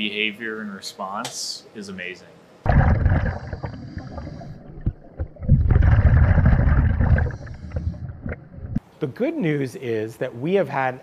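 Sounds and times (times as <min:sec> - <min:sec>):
muffled underwater water surges: 0:02.7 - 0:08.8.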